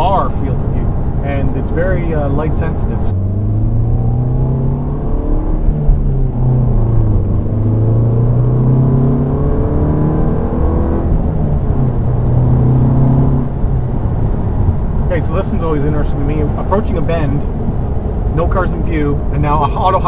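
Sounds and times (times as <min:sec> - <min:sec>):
car engine drone in cabin: 0:00.0 - 0:20.0.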